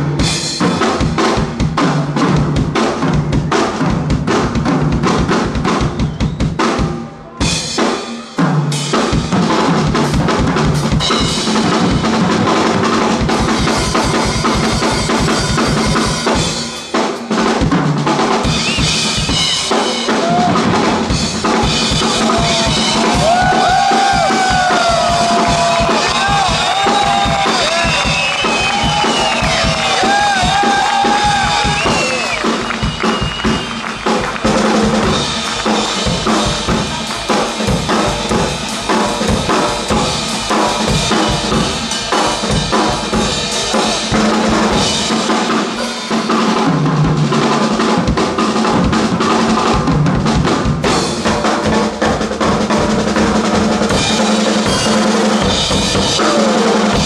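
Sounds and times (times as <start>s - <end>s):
drum kits playing: 0.0s - 57.0s.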